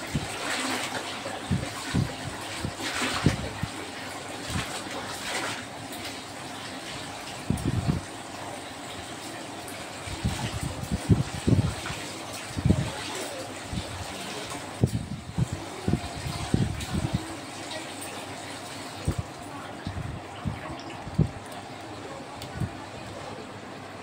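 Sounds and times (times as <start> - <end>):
water splashing in sink: 0.0 - 23.4
wet cloth wrung in water: 0.0 - 24.0.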